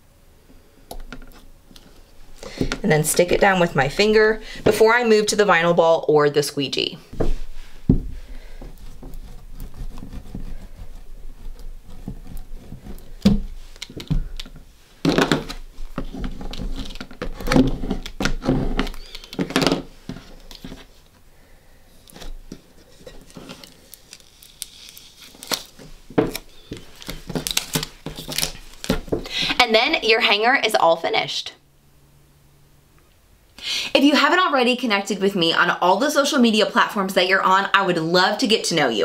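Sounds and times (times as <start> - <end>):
squeegee scraping tape: 8.5 - 14.5, 15.1 - 21.1, 22.0 - 29.0
transfer tape crinkling: 8.6 - 21.1, 22.0 - 29.4.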